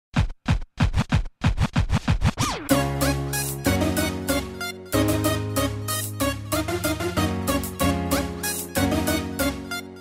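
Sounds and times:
record scratching: 0.2s - 2.8s.

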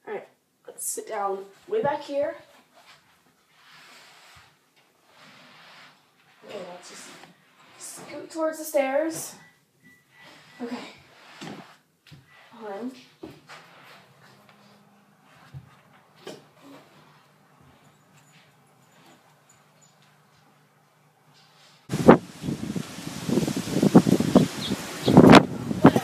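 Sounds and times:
rustling and soft bumps on stairs: 15.3s - 17.0s
gusty wind buffeting microphone: 21.9s - 26.0s.

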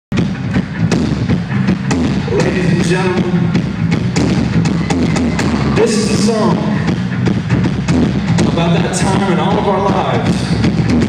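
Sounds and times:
drum and cymbal hits: 0.1s - 11.0s
live rock band playing: 0.1s - 11.0s.

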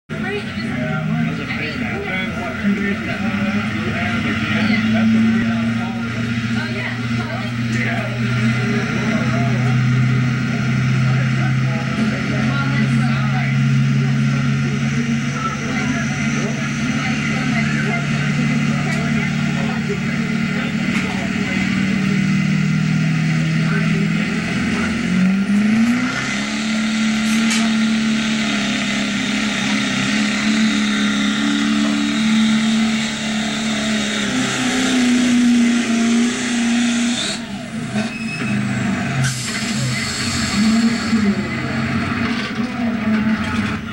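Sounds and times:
truck engine at high rpm: 0.0s - 43.9s.

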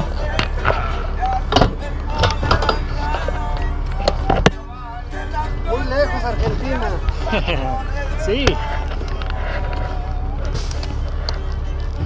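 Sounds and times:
steady low rumble: 0.0s - 12.0s
men talking: 2.2s - 11.9s.

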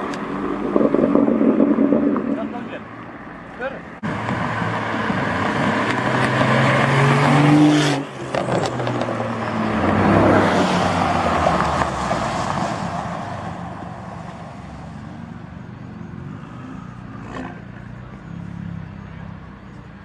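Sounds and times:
sports car engines accelerating: 0.0s - 13.8s.

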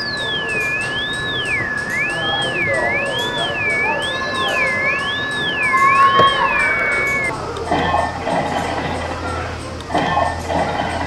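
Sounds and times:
steady high tone: 0.0s - 7.3s
warbling electronic tone: 0.0s - 7.3s.

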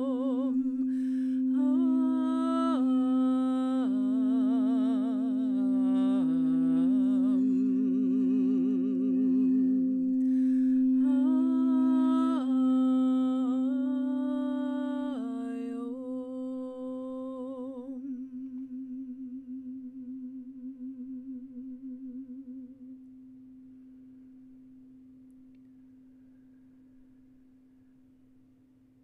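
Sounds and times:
steady ringing tone: 0.0s - 15.2s
woman humming: 0.0s - 23.0s.

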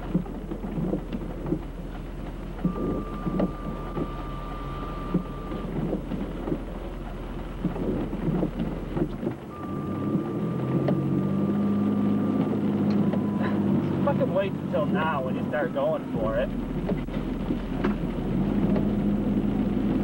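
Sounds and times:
car engine idling hum: 0.0s - 20.0s
rain tapping on car roof: 0.0s - 20.0s
vehicles swishing past on wet road: 0.0s - 20.0s.

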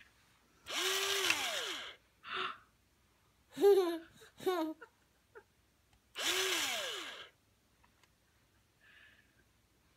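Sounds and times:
electric pencil sharpener grinding: 0.7s - 2.0s, 6.2s - 7.4s.

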